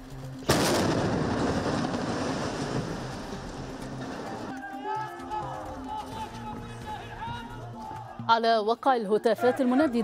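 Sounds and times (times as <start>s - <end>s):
explosion bang and rumble: 0.5s - 3.6s.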